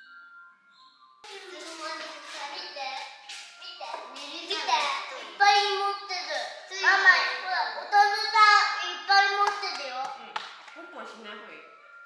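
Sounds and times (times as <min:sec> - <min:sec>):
child talking: 0:01.3 - 0:10.3.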